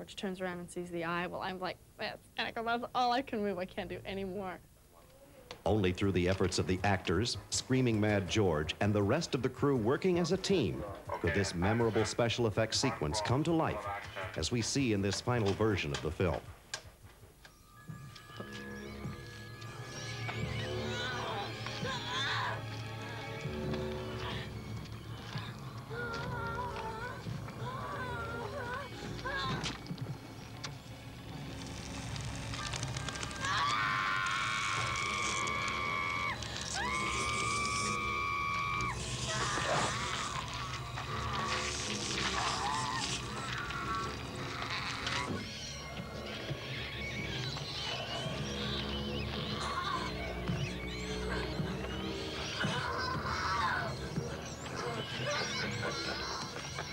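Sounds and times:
sustained horror score music: 0:17.4 - 0:56.9
sustained low music notes: 0:17.8 - 0:32.8
wavering high cry: 0:18.2 - 0:30.0, 0:31.8 - 0:56.9
wet effects noise: 0:18.9 - 0:45.7.

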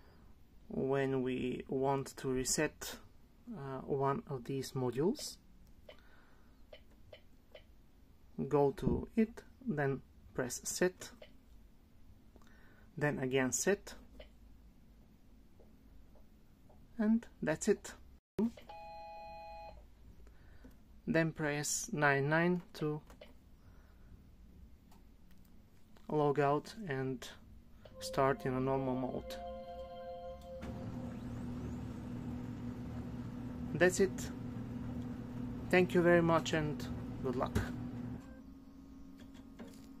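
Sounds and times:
printer low hum: 0:30.1 - 0:40.0.

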